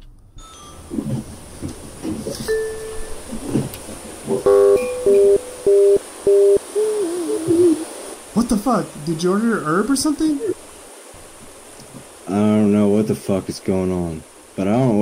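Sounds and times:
electronic doorbell ringing: 0.4 - 0.9, 2.5 - 3.2, 4.4 - 6.6
wavering tone: 2.4 - 3.5, 4.3 - 8.0.

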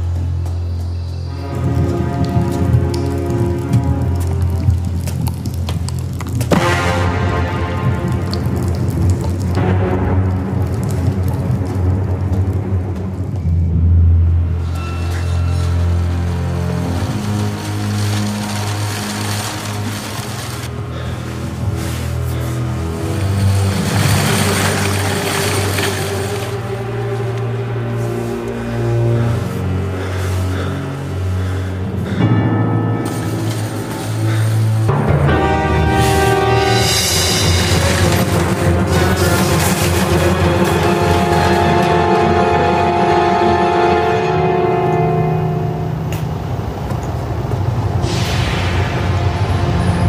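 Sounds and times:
low film score drones: 0.0 - 50.0
sustained musical notes: 14.2 - 46.6
loud hissing rush: 47.9 - 50.0.

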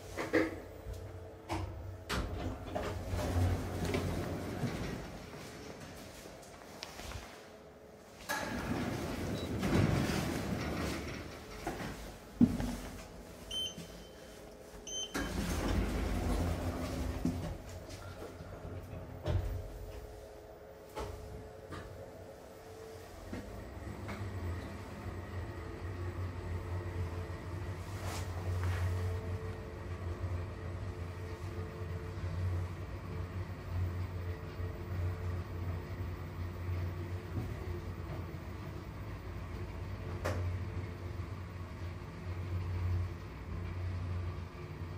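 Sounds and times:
elevator doors sliding: 0.0 - 42.0
elevator drive humming: 0.0 - 44.9.

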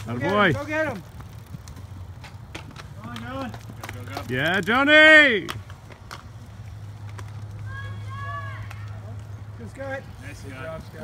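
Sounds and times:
bike clicks: 0.0 - 7.8
bike rolling on grass: 0.0 - 11.0.

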